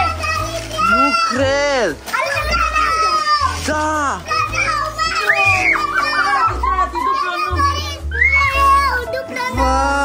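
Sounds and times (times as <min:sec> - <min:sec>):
excited children's voices: 0:00.0 - 0:10.0.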